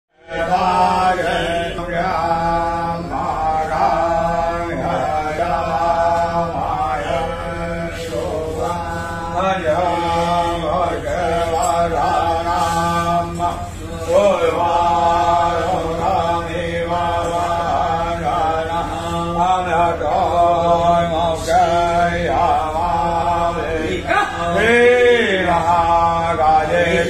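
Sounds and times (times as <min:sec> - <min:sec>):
person chanting a hymn: 0:00.1 - 0:27.0
low drone: 0:00.2 - 0:27.0.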